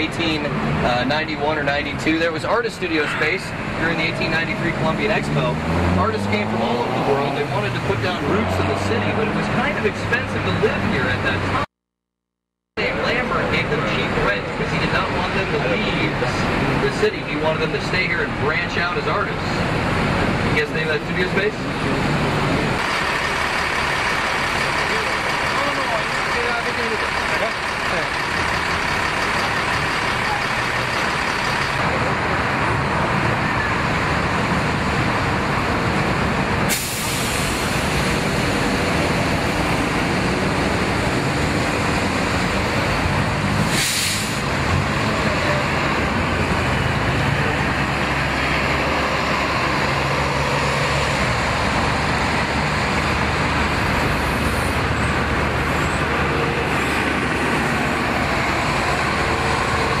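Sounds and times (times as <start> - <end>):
buses running: 0.0 - 11.7, 12.8 - 60.0
city street traffic: 0.0 - 11.8, 12.7 - 60.0
air-brake hiss: 36.7 - 37.8, 43.6 - 44.5.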